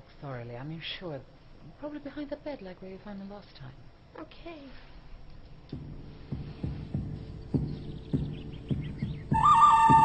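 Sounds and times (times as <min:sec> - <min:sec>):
heartbeat thumps: 0:05.7 - 0:10.0.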